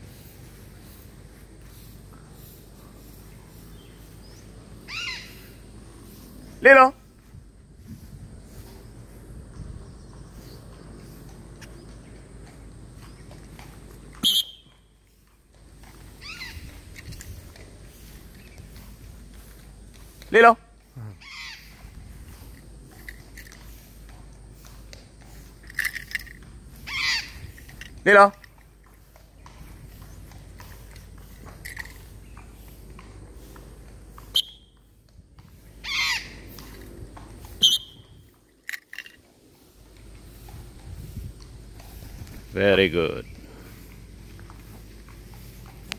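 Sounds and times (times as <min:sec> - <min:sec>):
parrot screeching: 0:04.9 - 0:05.4, 0:16.2 - 0:16.6, 0:21.2 - 0:21.7, 0:26.9 - 0:27.4, 0:35.8 - 0:36.4
short high chirps: 0:14.2 - 0:14.8, 0:37.6 - 0:38.1.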